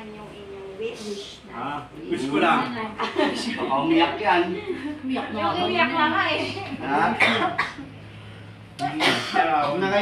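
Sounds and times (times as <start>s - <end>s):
person coughing: 7.2s - 7.9s, 9.0s - 9.5s.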